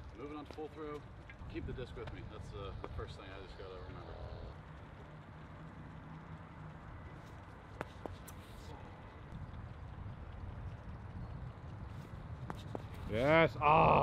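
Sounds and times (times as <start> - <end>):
low steady rumble: 0.0 - 14.0.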